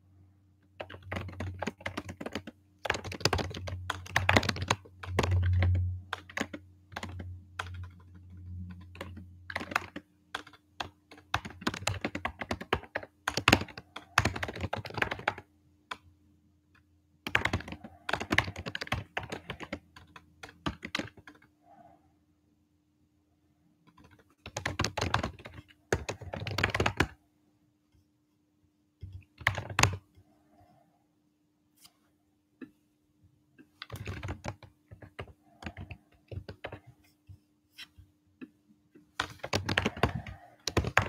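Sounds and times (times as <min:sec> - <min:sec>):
typing on computer keyboard: 0:00.8 - 0:16.0, 0:17.2 - 0:21.5, 0:23.9 - 0:27.2, 0:29.0 - 0:30.0, 0:33.8 - 0:37.0, 0:39.2 - 0:41.0.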